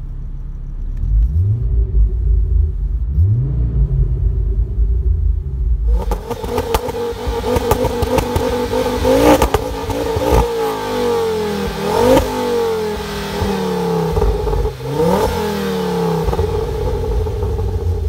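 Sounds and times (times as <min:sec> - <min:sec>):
car engine revving: 0:00.0 - 0:18.0
exhaust cracks: 0:00.0 - 0:18.0.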